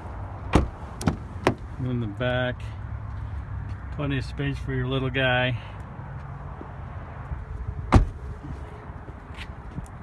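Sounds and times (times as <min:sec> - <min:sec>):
car door shutting: 0:00.5 - 0:01.6, 0:07.9 - 0:08.3.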